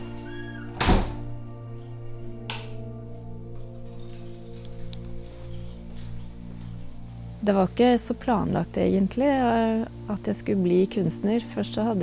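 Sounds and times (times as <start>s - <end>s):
background music with held notes: 0.0s - 12.0s
door thudding shut: 0.7s - 1.3s.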